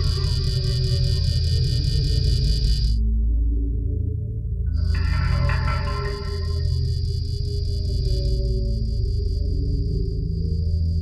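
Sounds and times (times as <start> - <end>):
high pulsing tone: 0.0 - 3.0, 4.8 - 9.8
deep sustained drone: 0.0 - 11.0.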